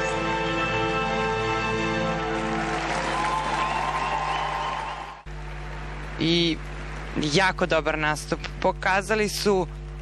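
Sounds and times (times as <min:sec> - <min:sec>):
arena crowd applauding: 0:02.2 - 0:07.2.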